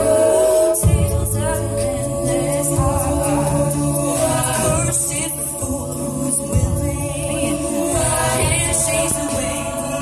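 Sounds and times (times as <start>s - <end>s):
women singing close harmony: 0.0s - 10.0s.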